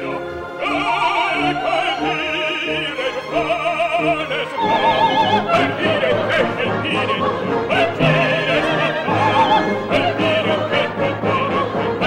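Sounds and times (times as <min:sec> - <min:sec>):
operatic soprano singing: 0:00.0 - 0:12.0
orchestra: 0:00.0 - 0:12.0.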